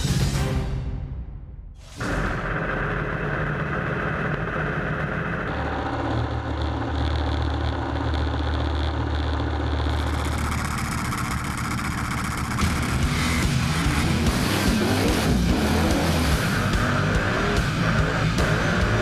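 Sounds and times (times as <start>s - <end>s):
car engine idling: 2.0s - 19.0s.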